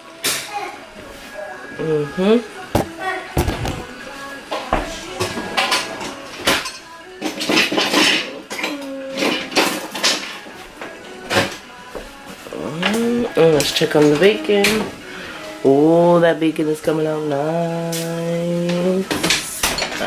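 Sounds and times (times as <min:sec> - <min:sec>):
metal utensils clattering on pan: 0:05.2 - 0:10.5, 0:18.7 - 0:20.0.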